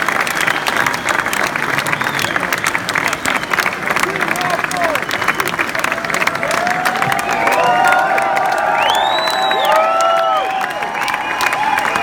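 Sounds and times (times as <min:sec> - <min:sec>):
scattered clapping: 0:00.0 - 0:12.0
audience cheering and shouting: 0:05.8 - 0:12.0
long high whistle: 0:08.8 - 0:12.0.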